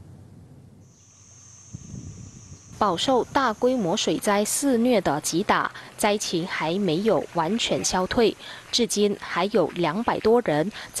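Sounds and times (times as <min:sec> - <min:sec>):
low background hiss: 0:00.0 - 0:11.0
high-pitched insect buzz: 0:00.8 - 0:11.0.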